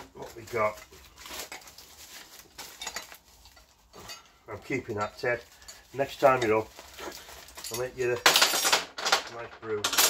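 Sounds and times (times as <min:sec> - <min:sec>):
paper packaging rustling: 0:00.0 - 0:08.5.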